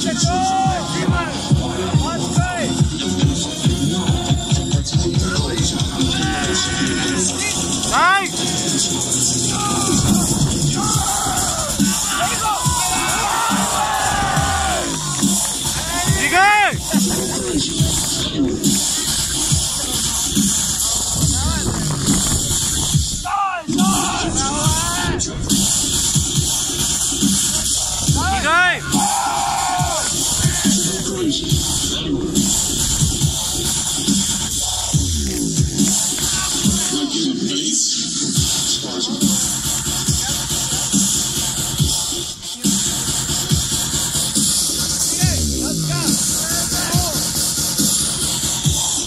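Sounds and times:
crowd voices: 0.0 - 49.0
music with steady beat: 0.0 - 49.0.

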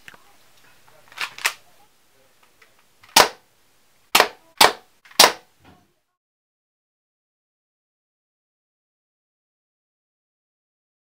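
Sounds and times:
darts hitting cork board: 4.2 - 5.5.

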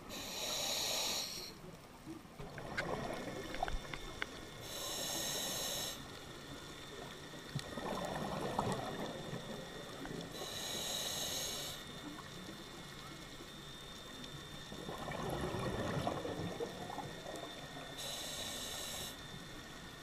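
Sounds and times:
high hiss of regulator inhale: 0.0 - 1.6, 4.6 - 6.9, 10.2 - 12.1, 17.8 - 19.7.

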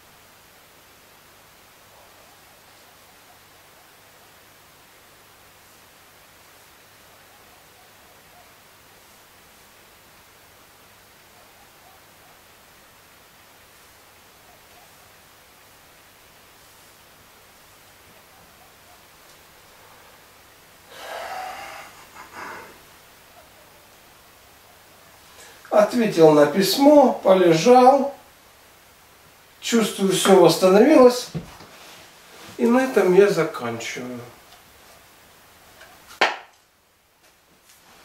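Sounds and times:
man breathing out loudly: 20.9 - 22.8.

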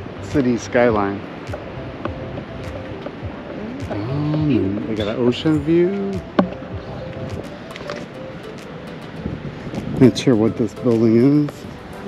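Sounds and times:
wind on microphone: 0.0 - 11.9
footsteps on paved path: 0.3 - 12.0.

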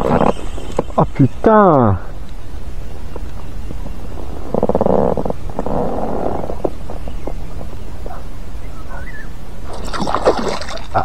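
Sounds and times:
gurgling water rumble: 0.0 - 1.4, 2.4 - 11.0
fish splashing at surface: 9.7 - 11.0.

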